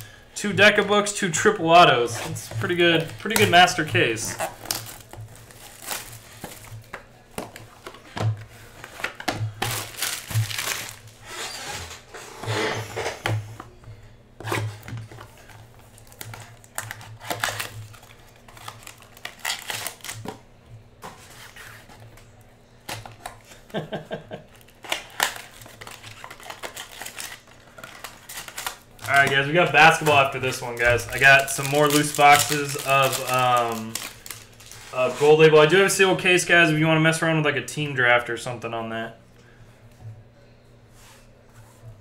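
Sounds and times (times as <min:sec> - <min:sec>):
cellophane crinkling and tearing: 0:01.7 - 0:08.0, 0:08.7 - 0:11.6, 0:14.5 - 0:20.4, 0:24.5 - 0:35.3.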